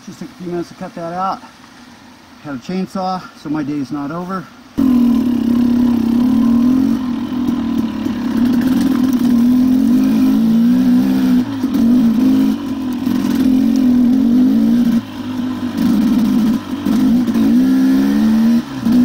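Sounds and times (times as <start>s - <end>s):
dirt bike engine revving: 4.8s - 19.0s.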